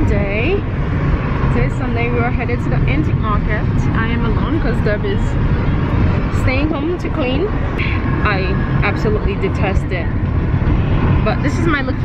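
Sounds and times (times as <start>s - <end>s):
road rumble inside moving car: 0.0s - 12.0s.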